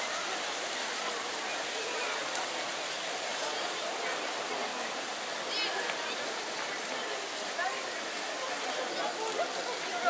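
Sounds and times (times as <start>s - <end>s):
crowd and street noise: 0.0s - 10.0s
passers-by talking: 0.0s - 10.0s.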